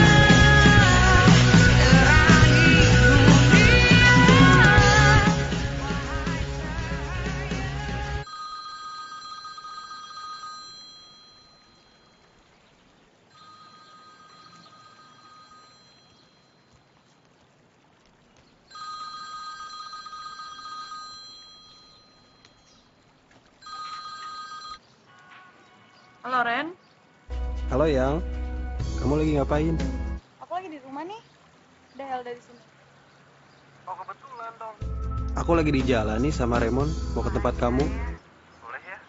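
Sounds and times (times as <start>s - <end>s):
phone ringtone: 8.2s - 12.2s, 13.3s - 16.7s, 18.7s - 22.7s, 23.6s - 24.8s.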